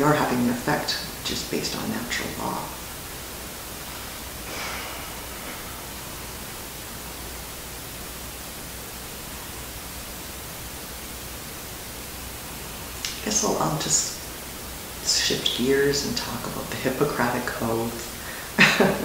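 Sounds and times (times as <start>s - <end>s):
low hum: 0.0s - 19.0s
recording noise hiss: 0.0s - 19.0s.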